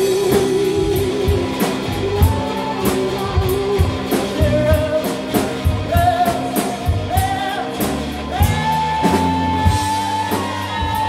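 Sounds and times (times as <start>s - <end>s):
bass guitar: 0.0s - 11.0s
drum beat: 0.0s - 11.0s
electric guitars: 0.0s - 11.0s
man singing: 0.0s - 11.0s.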